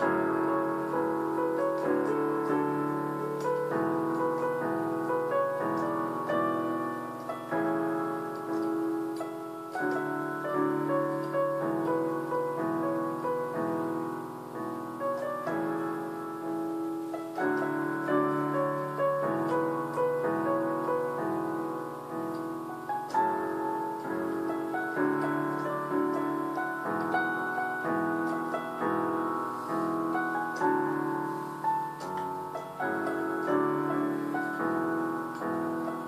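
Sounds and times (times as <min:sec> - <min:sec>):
keyboard playing piano melody: 0:00.0 - 0:36.0.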